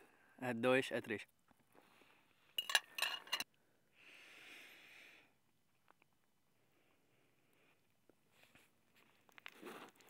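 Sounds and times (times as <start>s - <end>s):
fork clinking against dish: 2.6s - 3.4s
soft breathy hiss: 3.7s - 5.4s.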